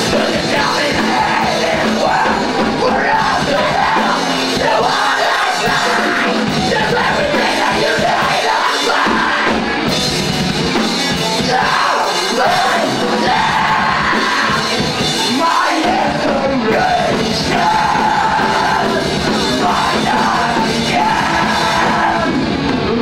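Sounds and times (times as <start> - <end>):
singer shouting: 0.0 - 9.8, 11.4 - 23.0
live rock band playing: 0.0 - 23.0.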